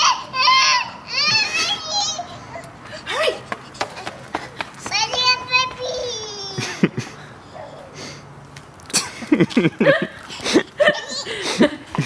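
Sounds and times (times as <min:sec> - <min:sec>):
child squealing: 0:00.0 - 0:04.3.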